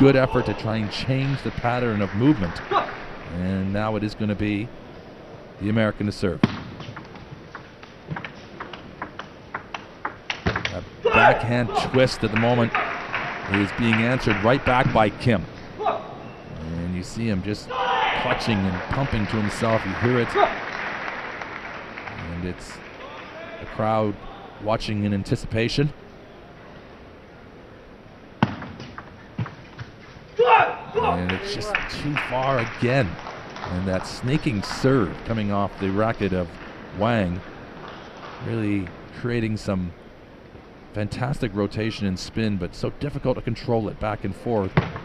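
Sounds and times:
table tennis racket striking ball: 0:06.4 - 0:10.8.

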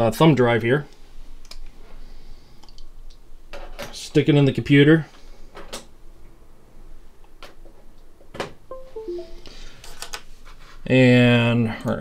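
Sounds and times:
computer chime: 0:08.7 - 0:09.6.

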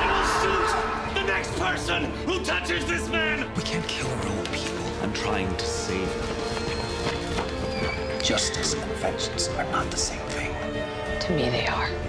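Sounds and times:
trailer music: 0:00.0 - 0:12.0
galloping horse hoofbeats: 0:05.9 - 0:08.8.

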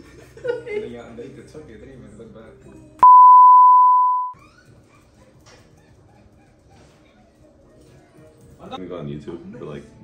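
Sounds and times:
test-tone beep: 0:03.0 - 0:04.4.

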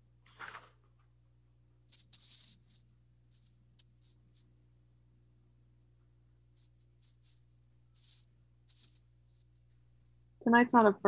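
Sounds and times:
rattle shaken in hissy bursts: 0:01.9 - 0:04.4, 0:06.4 - 0:09.7.

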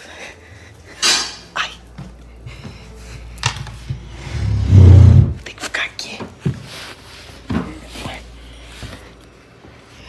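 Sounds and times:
handling and bumping noises: 0:06.1 - 0:09.8.

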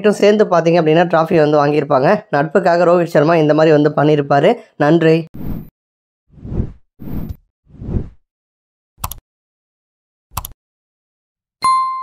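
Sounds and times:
whoosh sound effects: 0:06.4 - 0:08.2.

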